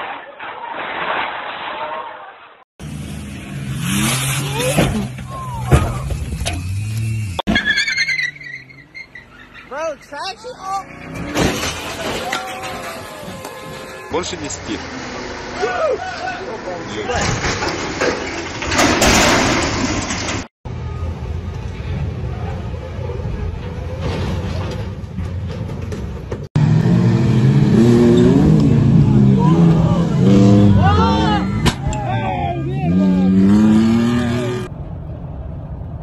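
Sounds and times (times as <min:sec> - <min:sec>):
tyres squealing: 0:07.5 - 0:14.6
crane crashing over: 0:11.1 - 0:14.0, 0:17.1 - 0:20.5
car engine revving: 0:26.6 - 0:31.6.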